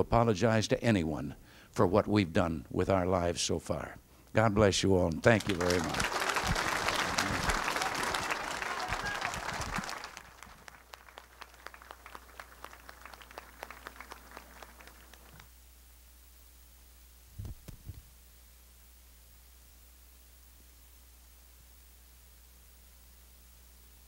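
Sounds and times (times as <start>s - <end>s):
audience applauding: 5.3s - 15.4s.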